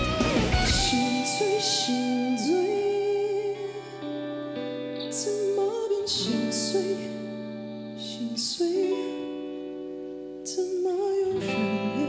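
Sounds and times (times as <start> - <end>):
man singing: 0.0 - 4.0, 5.1 - 7.4, 8.0 - 9.4, 10.5 - 12.0
soft guitar accompaniment: 0.0 - 12.0.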